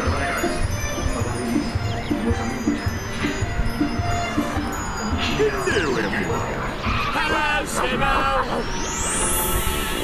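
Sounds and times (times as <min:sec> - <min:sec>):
twinkling chime notes: 0:00.0 - 0:07.3
cartoon music with steady beat: 0:00.0 - 0:10.0.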